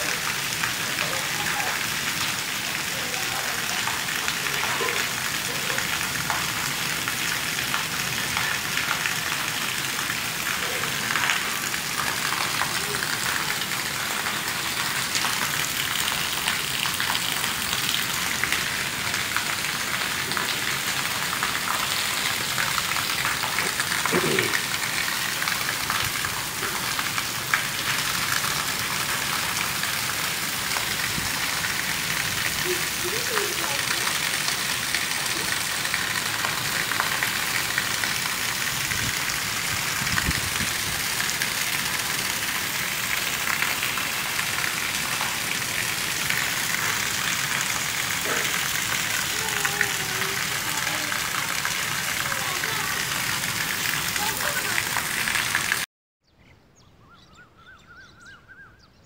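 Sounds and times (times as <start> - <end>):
rain hissing on pavement: 0.0 - 55.9
water pouring onto tiles: 0.0 - 55.9.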